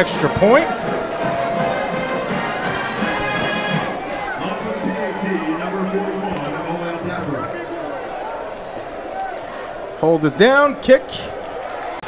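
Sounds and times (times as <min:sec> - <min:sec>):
band music with held notes: 0:00.0 - 0:07.8.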